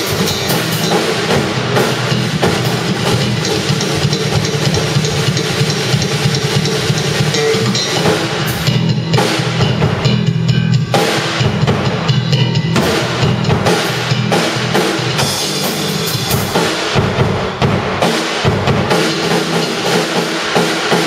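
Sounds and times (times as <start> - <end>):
electric bass line: 0.0 - 20.0
drum kit played busily: 0.0 - 21.0.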